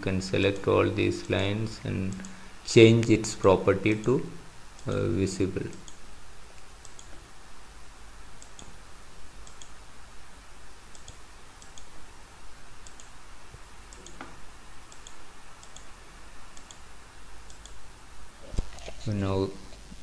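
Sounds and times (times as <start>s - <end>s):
computer mouse clicking: 2.0s - 2.4s, 6.6s - 7.2s, 8.4s - 8.8s, 9.4s - 9.8s, 10.9s - 11.9s, 12.8s - 13.2s, 13.9s - 15.9s, 16.5s - 16.8s, 17.4s - 17.8s.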